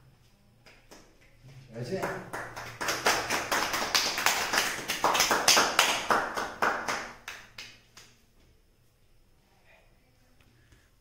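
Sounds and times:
hands clapping: 0.6s - 8.2s.

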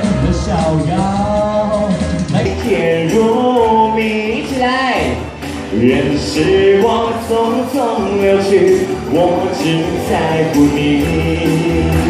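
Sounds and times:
pop backing track: 0.0s - 12.0s.

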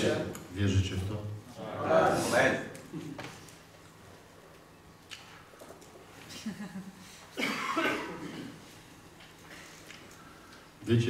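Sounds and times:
person coughing: 7.4s - 8.6s.

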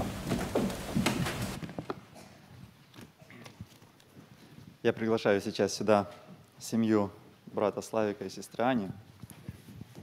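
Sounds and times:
faint knocks and shuffles: 0.0s - 5.0s.

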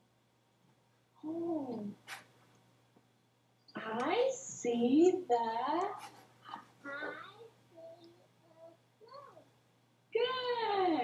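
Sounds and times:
faint child's voice: 6.8s - 9.5s.

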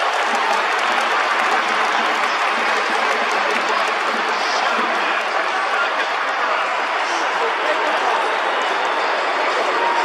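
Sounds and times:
stadium crowd clapping and cheering: 0.0s - 10.0s.

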